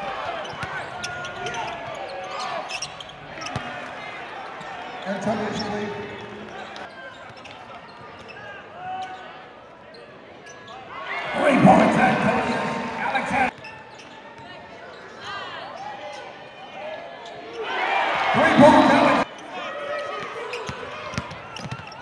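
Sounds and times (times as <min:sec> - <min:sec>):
crowd voices: 0:00.0 - 0:22.0
basketball bouncing on court: 0:03.4 - 0:03.7, 0:20.6 - 0:22.0.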